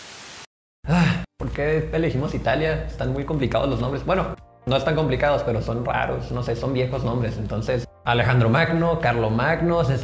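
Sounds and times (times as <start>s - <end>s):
static hiss: 0.0s - 0.5s.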